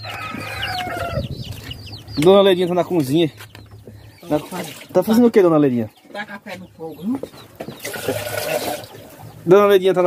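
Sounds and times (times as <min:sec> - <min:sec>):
fowl clucking and calling: 0:00.0 - 0:02.2.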